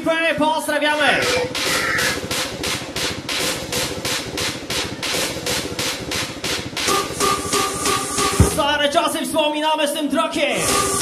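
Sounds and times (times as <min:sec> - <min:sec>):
electronic dance music drum hits: 0:01.0 - 0:09.4, 0:10.6 - 0:11.0.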